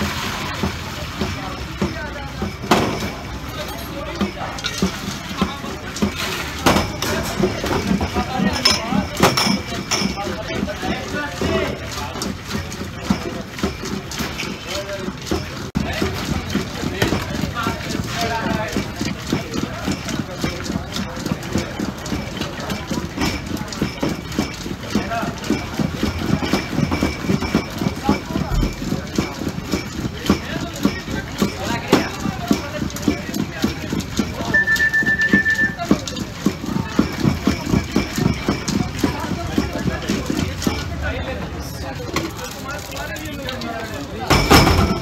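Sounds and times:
rhythmic knocking: 0:00.4 - 0:45.0
short steady high tone: 0:34.5 - 0:35.8.

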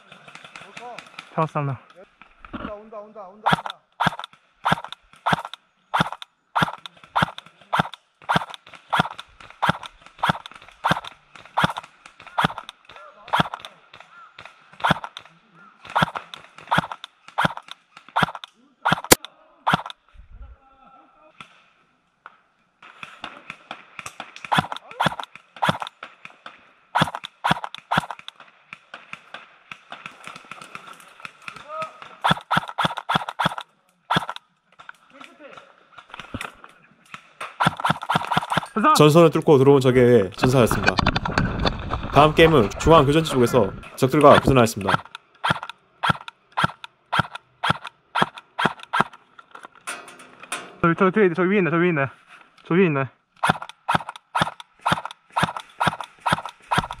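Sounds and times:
airsoft rifle single shots: 0:03.5 - 0:20.0.

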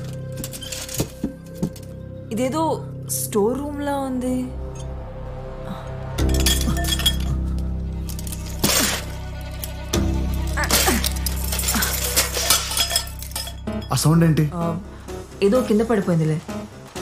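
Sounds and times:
glassy clinking and ringing: 0:06.2 - 0:07.6, 0:11.2 - 0:14.2.

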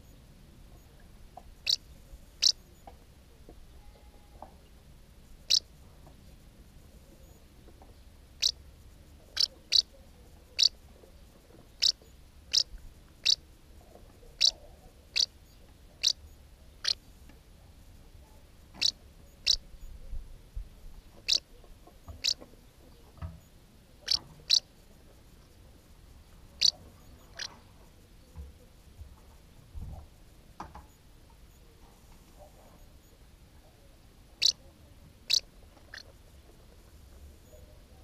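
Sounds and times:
bird high chirping calls: 0:01.6 - 0:02.7, 0:05.4 - 0:05.7, 0:09.3 - 0:09.9, 0:10.6 - 0:10.8, 0:11.8 - 0:13.4, 0:14.4 - 0:16.2, 0:18.8 - 0:19.9, 0:21.2 - 0:21.5, 0:22.1 - 0:22.4, 0:24.0 - 0:24.7, 0:34.4 - 0:34.6, 0:35.3 - 0:36.1.

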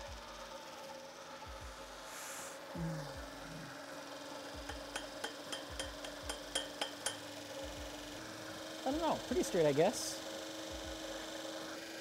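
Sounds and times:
electric motor humming: 0:00.0 - 0:12.0.

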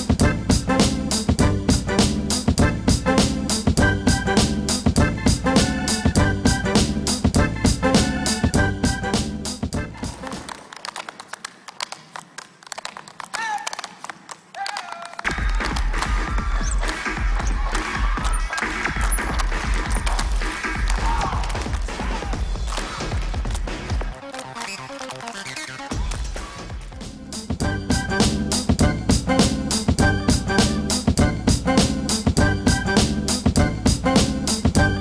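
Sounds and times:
bass-heavy music track: 0:00.0 - 0:10.5, 0:15.3 - 0:35.0
tap shoes clicking on stage floor: 0:09.7 - 0:26.3.

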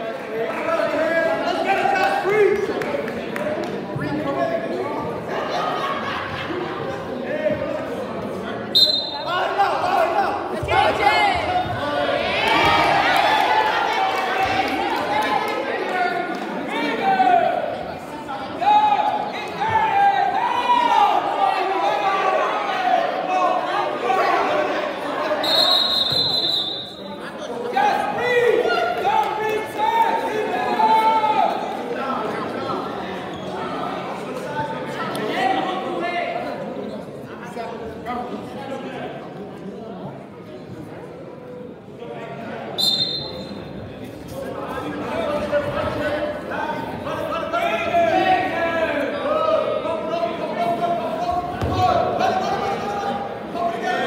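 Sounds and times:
murmur of voices: 0:00.0 - 0:54.0
referee's whistle long blast: 0:08.8 - 0:09.3, 0:25.4 - 0:27.0, 0:42.8 - 0:43.5.

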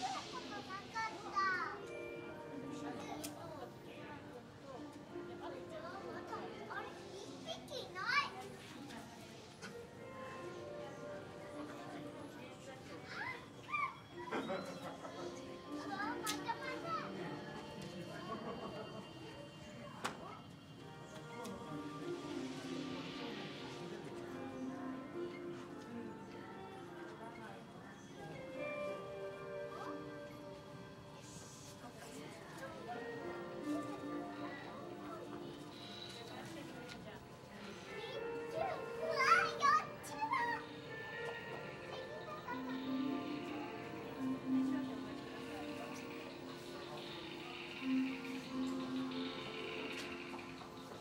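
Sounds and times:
children's voices: 0:00.0 - 0:02.1, 0:05.5 - 0:10.2, 0:12.7 - 0:19.4, 0:36.3 - 0:48.9
people talking: 0:00.0 - 0:09.6, 0:10.6 - 0:29.0, 0:31.2 - 0:51.0
faint background music: 0:00.0 - 0:51.0.

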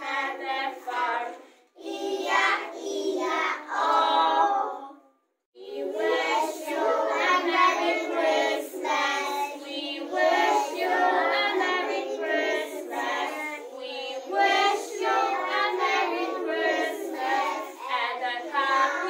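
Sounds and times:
young children singing: 0:00.0 - 0:19.0.

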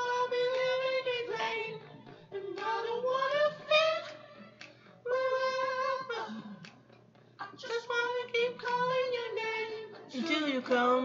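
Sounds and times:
man singing unaccompanied: 0:07.4 - 0:11.0.

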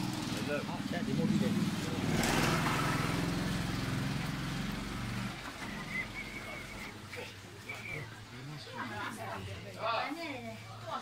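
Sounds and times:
motorbike engine passing: 0:00.0 - 0:07.3.

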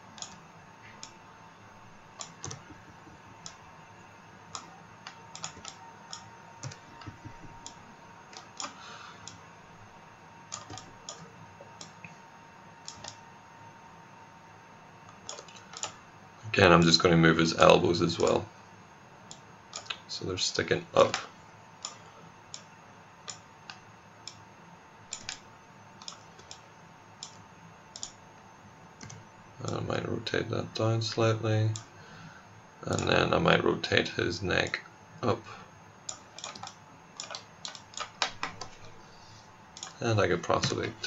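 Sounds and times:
faint room hiss: 0:00.0 - 0:41.0
computer mouse clicks: 0:00.1 - 0:00.4, 0:02.2 - 0:03.6, 0:04.5 - 0:09.4, 0:10.5 - 0:11.2, 0:12.8 - 0:13.2, 0:15.1 - 0:16.0, 0:19.3 - 0:20.0, 0:21.8 - 0:24.4, 0:25.1 - 0:25.4, 0:26.0 - 0:26.6, 0:27.2 - 0:28.2, 0:29.0 - 0:29.8, 0:36.0 - 0:38.9, 0:39.8 - 0:40.0.

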